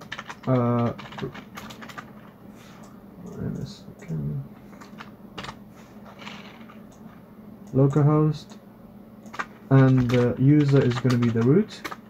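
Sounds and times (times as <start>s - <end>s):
computer keyboard keystrokes: 0.0s - 2.3s, 4.8s - 5.6s, 9.2s - 12.0s.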